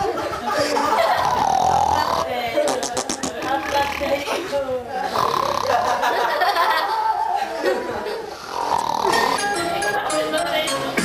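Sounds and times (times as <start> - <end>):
people's voices: 0.0 - 11.0
man snoring: 1.2 - 2.4, 5.1 - 5.8, 8.4 - 9.5.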